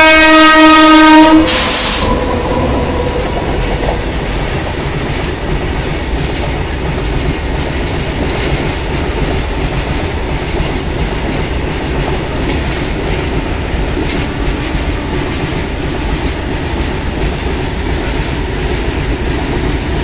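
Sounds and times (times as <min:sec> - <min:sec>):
train horn blast: 0:00.0 - 0:03.8.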